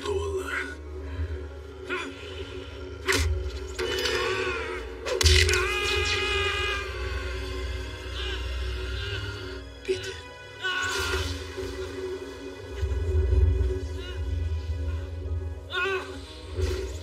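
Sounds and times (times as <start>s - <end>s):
dramatic film music: 0.0s - 17.0s.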